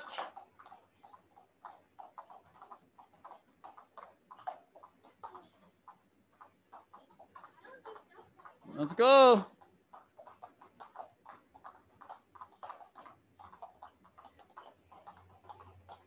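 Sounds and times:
jump ropes slapping a foam mat: 0.0s - 16.0s.

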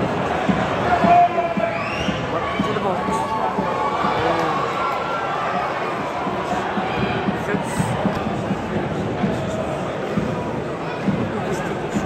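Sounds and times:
crowd shouting and chanting: 0.0s - 12.0s.

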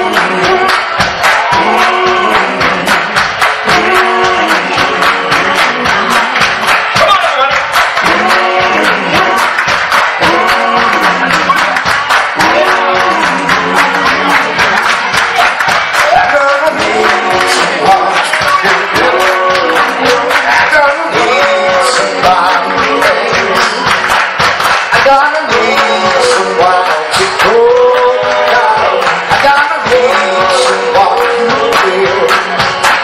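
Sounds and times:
hands clapping in steady beat: 0.0s - 33.0s
voices singing together: 0.0s - 33.0s.

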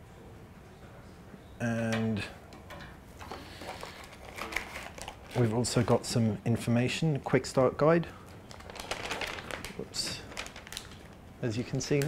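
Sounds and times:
paper and cardboard rustling: 3.4s - 6.0s, 8.5s - 12.0s.

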